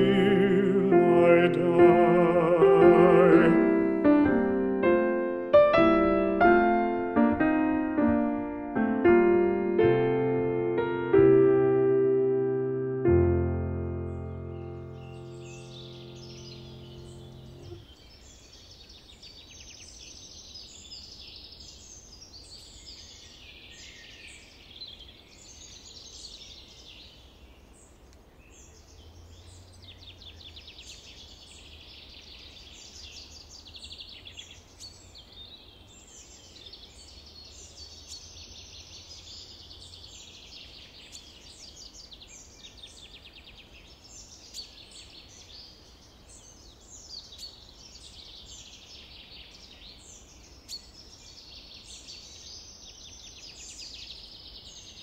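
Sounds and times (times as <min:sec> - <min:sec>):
held piano chord: 0:00.0 - 0:17.8
songbirds singing: 0:00.0 - 0:55.0.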